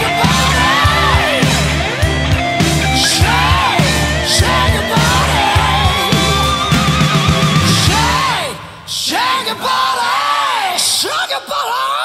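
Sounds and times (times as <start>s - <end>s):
hard rock song: 0.0s - 9.9s
man singing belted vocals: 0.0s - 12.0s.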